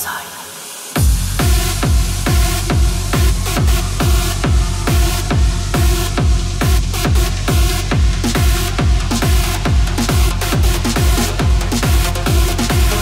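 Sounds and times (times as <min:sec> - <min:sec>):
trance music: 0:00.0 - 0:13.0.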